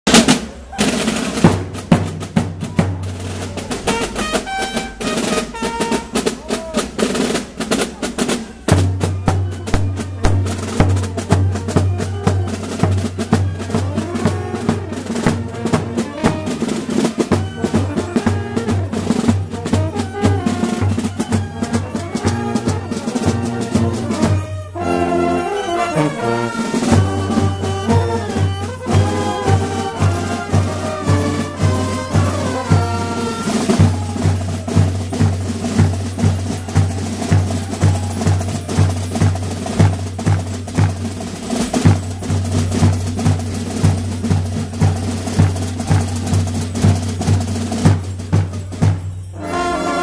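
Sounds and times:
bass drum and snare drums: 0.1 - 25.2, 25.8 - 50.0
low brass line: 0.1 - 40.8, 43.8 - 50.0
marching brass band playing: 0.1 - 50.0.

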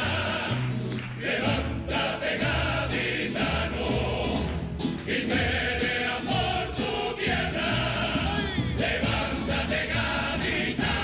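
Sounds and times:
double bass: 0.0 - 11.0
male chorus singing in harmony: 0.0 - 11.0
plucked guitars: 0.0 - 11.0.

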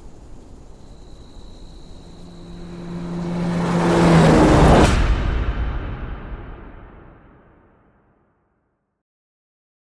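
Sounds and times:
whoosh of noise: 1.6 - 7.9
sharp hit: 1.9 - 8.3.

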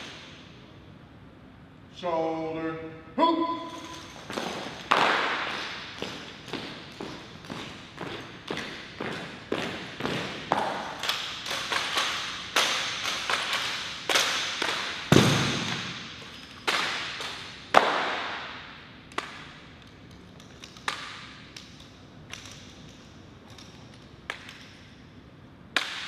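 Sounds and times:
marching feet taps and cracks: 4.2 - 18.4.

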